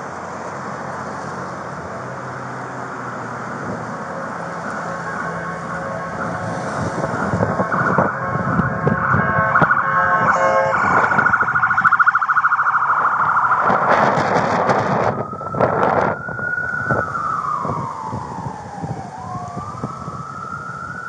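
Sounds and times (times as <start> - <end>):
siren wail: 1.4 - 21.0
siren yelp: 2.8 - 21.0.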